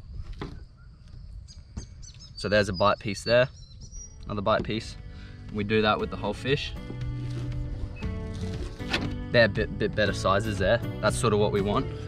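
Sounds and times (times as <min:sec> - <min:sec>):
small birds chirping: 0:00.0 - 0:05.6.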